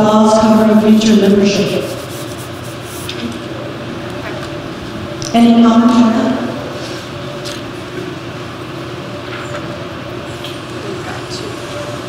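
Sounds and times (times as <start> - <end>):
continuous low hum: 0.0 - 12.0.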